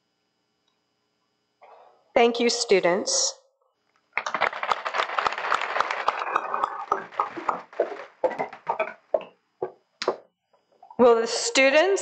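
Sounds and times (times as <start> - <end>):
audience applause: 4.2 - 9.3
hand claps: 4.2 - 10.2.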